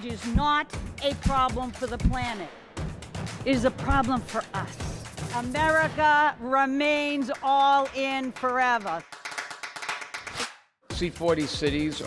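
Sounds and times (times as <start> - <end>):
audience applause: 7.4 - 10.5.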